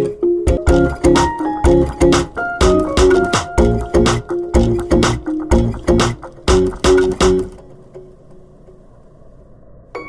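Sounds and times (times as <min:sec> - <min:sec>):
plucked guitar music: 0:00.0 - 0:08.1.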